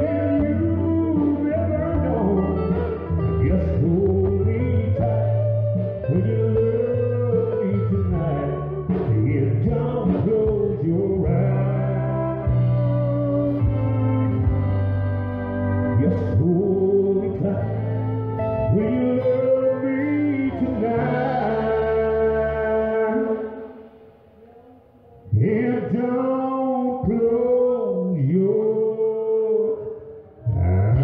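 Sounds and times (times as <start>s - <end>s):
man singing: 0.0s - 14.5s, 15.7s - 23.9s, 25.2s - 31.0s
guitar accompaniment: 0.0s - 24.1s.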